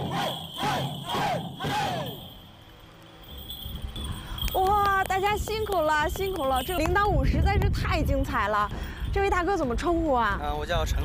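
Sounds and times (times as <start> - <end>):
group shouting in unison: 0.0 - 2.2
hand bells jingling: 0.0 - 10.4.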